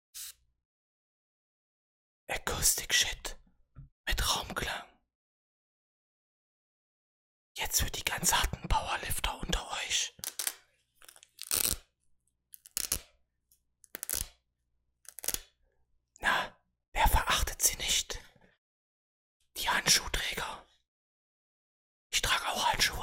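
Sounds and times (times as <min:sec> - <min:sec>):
velcro strap ripping: 0:10.2 - 0:11.9, 0:12.5 - 0:13.1, 0:13.8 - 0:14.4, 0:15.0 - 0:15.5.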